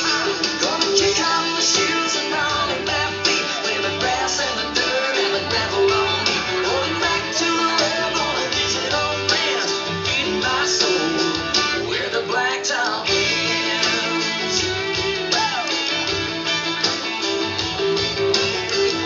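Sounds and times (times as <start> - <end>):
sliding lead guitar notes: 0.0 - 11.9, 13.0 - 19.0
country music with strummed guitar: 0.0 - 19.0.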